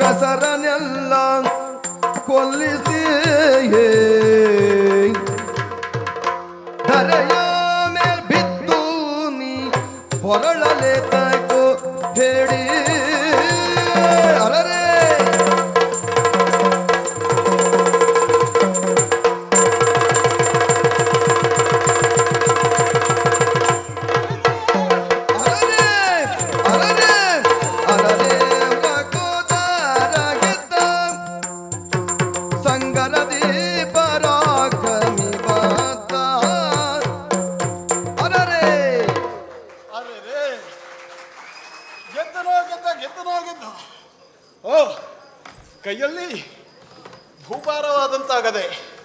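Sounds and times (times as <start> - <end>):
fast drum strokes: 9.6 - 39.6
small hand cymbals ticking: 9.7 - 24.2, 25.4 - 38.7.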